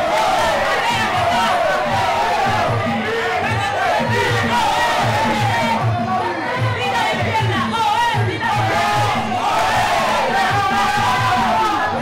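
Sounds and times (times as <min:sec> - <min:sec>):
crowd shouting: 0:00.0 - 0:12.0
steady drum beat: 0:00.0 - 0:12.0.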